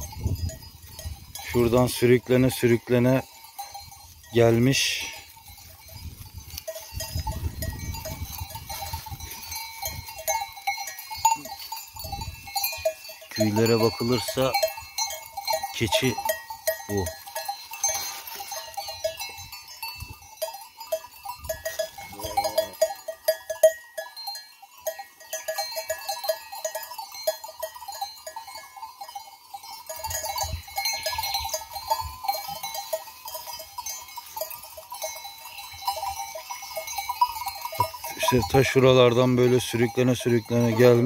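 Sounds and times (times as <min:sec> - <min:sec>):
sheep bells clinking: 0:00.0 - 0:41.0.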